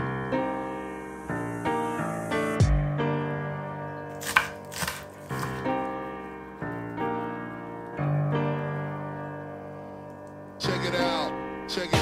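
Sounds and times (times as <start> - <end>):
soft piano chords: 0.0 - 12.0.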